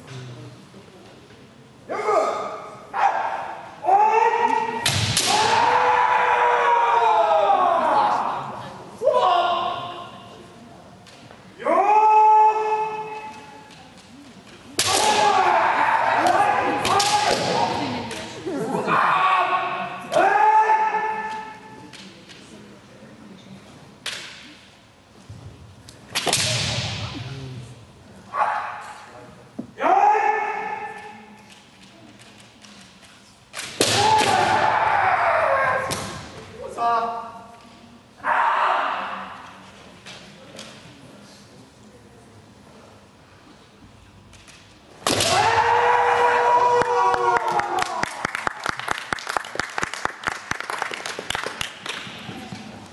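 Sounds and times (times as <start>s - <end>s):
long held shout: 1.9s - 10.1s, 18.7s - 21.6s, 45.2s - 48.3s
fighters shouting: 1.9s - 10.2s, 14.8s - 21.6s, 33.8s - 36.0s, 45.1s - 47.9s
bamboo swords striking: 4.8s - 5.6s, 14.8s - 15.5s, 16.2s - 17.8s, 26.1s - 27.0s, 33.5s - 34.7s, 45.0s - 45.6s.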